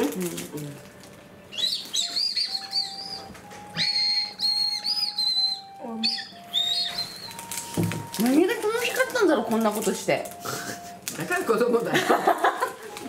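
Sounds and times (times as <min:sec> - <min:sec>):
candy whistle shrill peeps: 0:01.4 - 0:09.3.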